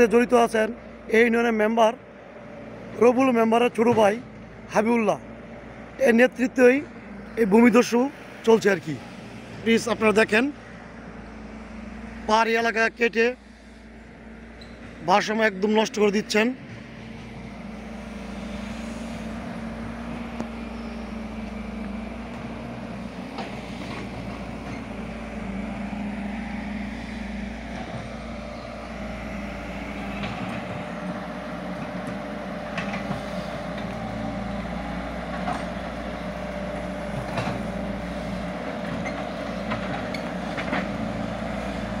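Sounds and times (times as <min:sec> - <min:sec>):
excavator diesel engine running: 0:00.0 - 0:42.0.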